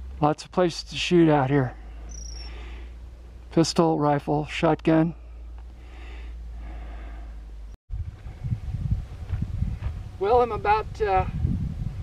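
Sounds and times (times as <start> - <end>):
steady low hum: 0.0 - 12.0
wind buffeting microphone: 7.9 - 12.0.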